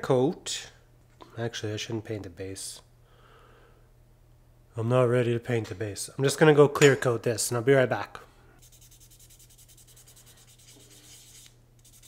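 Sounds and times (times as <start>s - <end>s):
sandpaper rubbing on plastic: 8.6s - 12.0s.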